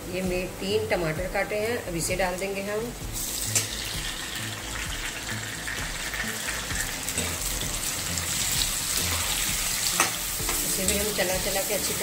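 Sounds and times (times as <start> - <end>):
food sizzling in oil: 2.4 - 12.0
steel spoon scraping a pan: 9.1 - 12.0.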